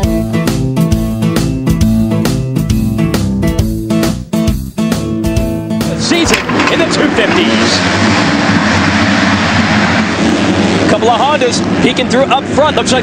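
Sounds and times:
guitar music: 0.0s - 8.0s
motocross bikes racing: 5.9s - 13.0s.

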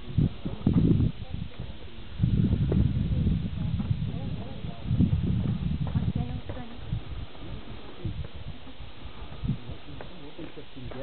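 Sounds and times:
faint voices: 0.0s - 11.0s
wind buffeting microphone: 0.0s - 11.0s.

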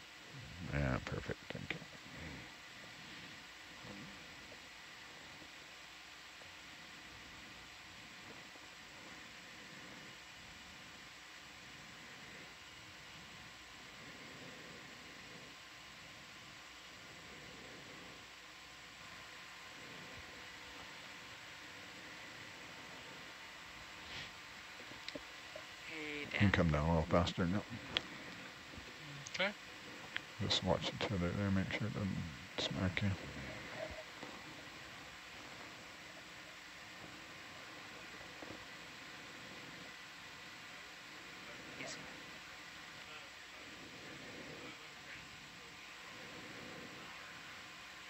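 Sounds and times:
faint hum tones: 0.0s - 48.0s
intercom line hiss: 30.4s - 34.6s.

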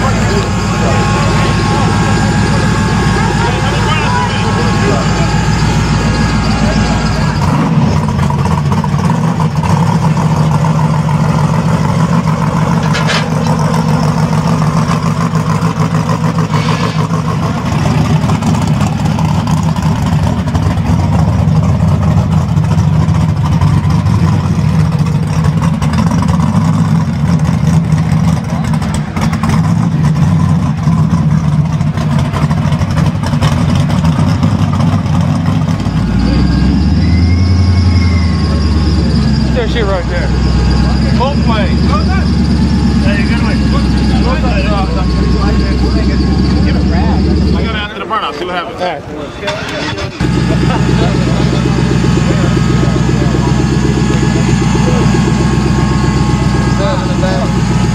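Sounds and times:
deep engines idling: 0.0s - 57.9s.

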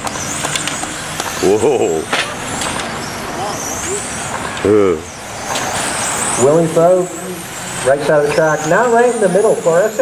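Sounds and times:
radio-controlled car motors whining: 0.0s - 10.0s.

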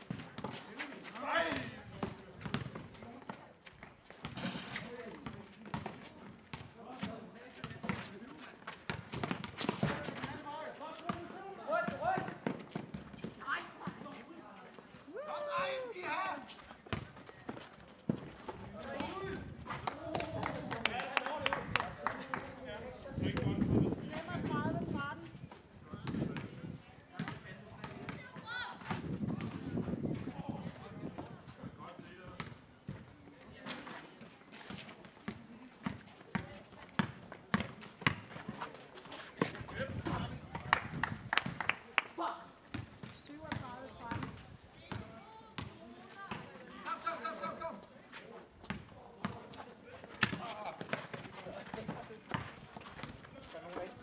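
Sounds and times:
players' voices: 0.0s - 54.0s
basketball bouncing on pavement: 1.5s - 10.4s, 11.0s - 13.4s, 16.8s - 19.2s, 26.0s - 30.2s, 32.3s - 33.0s, 34.7s - 38.7s, 42.7s - 46.6s, 48.6s - 53.8s
basketball bouncing: 2.4s - 2.8s, 37.0s - 38.3s.

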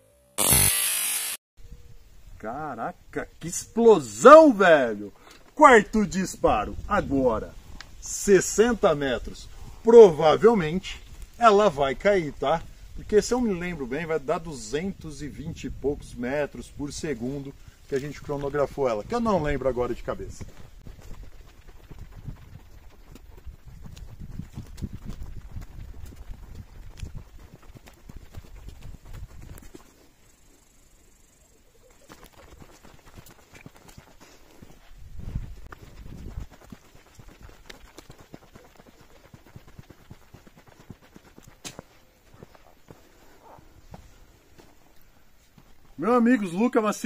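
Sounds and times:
footsteps on dirt and straw: 31.9s - 46.0s.

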